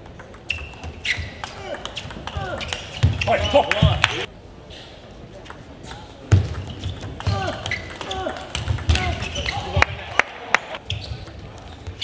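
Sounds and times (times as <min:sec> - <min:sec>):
table tennis ball clicking: 0:00.0 - 0:00.9.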